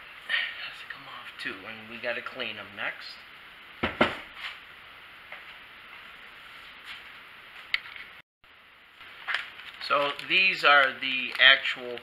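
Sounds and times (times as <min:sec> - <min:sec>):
part knocking on surface: 0:03.8 - 0:04.3
plastic bag crinkling: 0:09.1 - 0:12.0.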